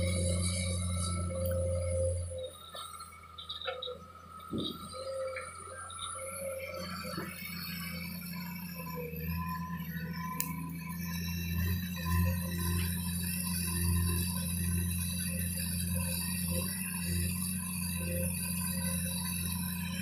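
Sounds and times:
excavator diesel engine running: 0:00.0 - 0:20.0
steady whine: 0:00.0 - 0:20.0.

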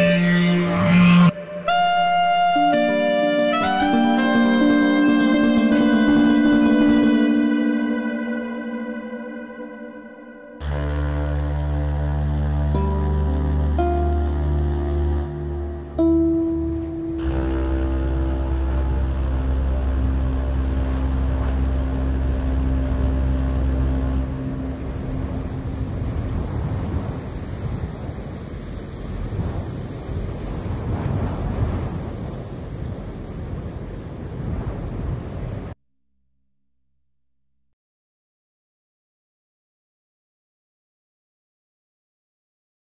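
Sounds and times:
drone chord over deep bass: 0:00.0 - 0:27.1
rushing wash of noise: 0:00.0 - 0:35.8.

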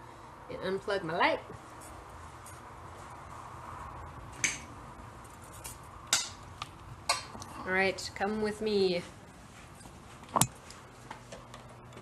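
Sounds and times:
steady room hum: 0:00.0 - 0:12.0.

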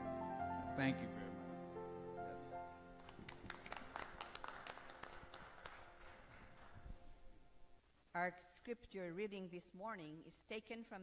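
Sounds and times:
scattered hand clapping: 0:03.0 - 0:06.8.

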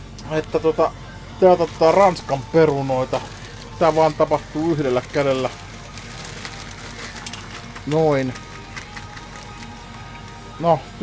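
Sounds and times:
frozen fries rattling: 0:01.4 - 0:10.8
plastic bag crinkling: 0:01.5 - 0:10.4.

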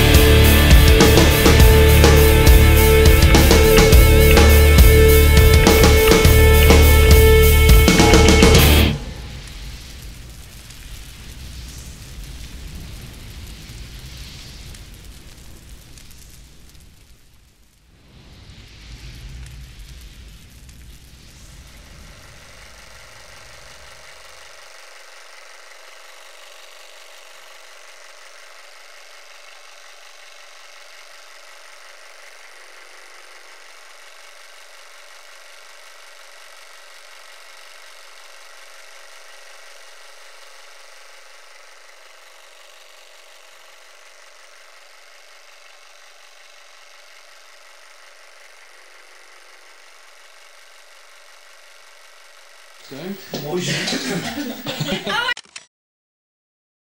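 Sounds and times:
low rumble: 0:00.0 - 0:24.2
steady hiss with faint tones: 0:00.0 - 0:26.5, 0:52.8 - 0:55.3.

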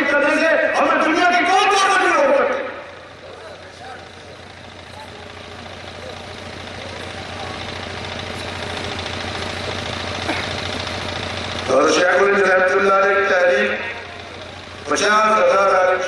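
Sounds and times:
low hum: 0:02.8 - 0:11.7.

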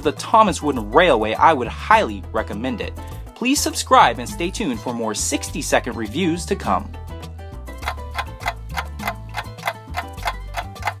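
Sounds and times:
background music with bass line: 0:00.0 - 0:11.0
clock ticking: 0:07.8 - 0:11.0.

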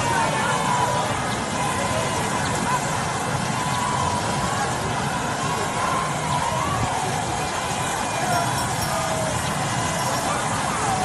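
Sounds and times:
crowd singing and talking: 0:00.0 - 0:11.0
outdoor noise: 0:00.0 - 0:11.0.

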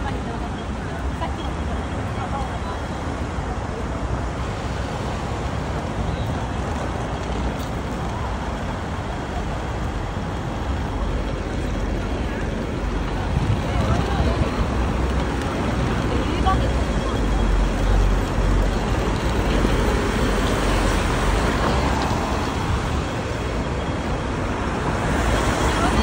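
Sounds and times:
cars and buses passing: 0:00.0 - 0:26.0.

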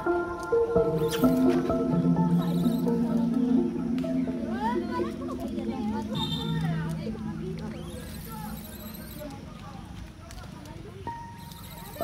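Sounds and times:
steady high tone: 0:00.0 - 0:09.3
faint background voices: 0:01.2 - 0:12.0.

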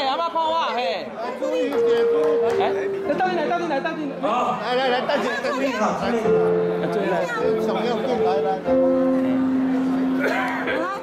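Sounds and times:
several voices talking: 0:00.0 - 0:11.0.

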